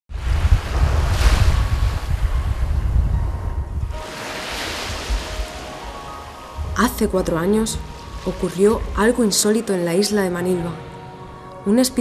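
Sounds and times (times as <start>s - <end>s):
small waves breaking on shore: 0.1s - 2.8s, 3.9s - 6.6s
wind buffeting microphone: 0.1s - 5.6s.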